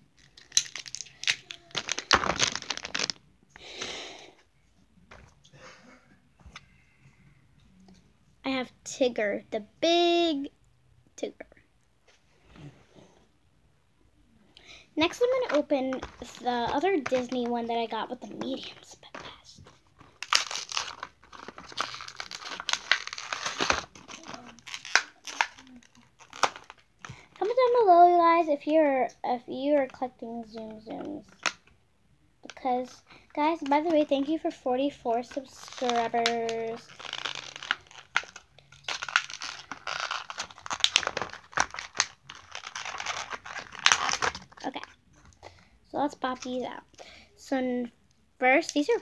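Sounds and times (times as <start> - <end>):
plastic packaging crinkling and tearing: 0.2 - 3.2, 15.0 - 27.3, 35.1 - 45.0.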